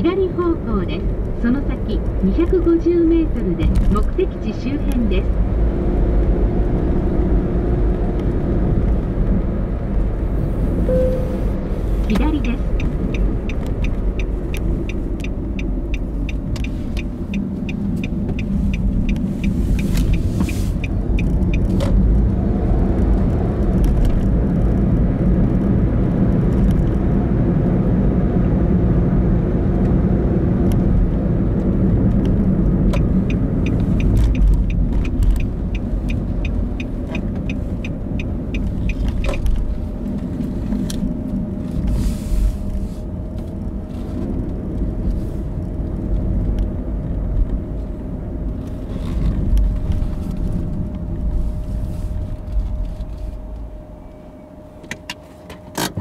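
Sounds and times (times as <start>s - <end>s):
car engine and tyre rumble: 0.0s - 56.0s
turn signal clicking: 10.8s - 24.8s, 31.6s - 41.9s.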